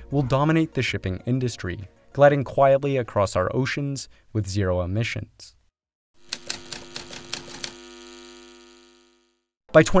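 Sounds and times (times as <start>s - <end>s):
typewriter clacks: 6.3s - 7.8s.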